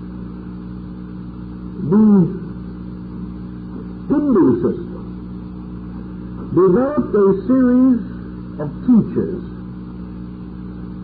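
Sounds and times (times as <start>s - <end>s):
low hum with faint hiss: 0.0s - 11.0s
man speaking: 1.8s - 2.6s, 4.1s - 5.1s, 6.5s - 9.6s.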